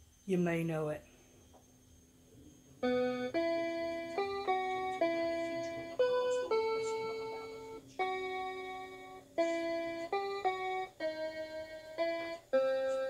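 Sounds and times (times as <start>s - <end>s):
low sustained keyboard note: 2.2s - 13.0s
electronic keyboard melody: 2.7s - 13.0s.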